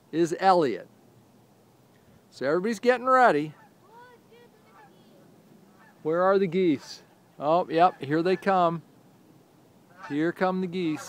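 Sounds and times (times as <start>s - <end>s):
distant geese honking: 3.2s - 8.8s, 9.8s - 11.0s.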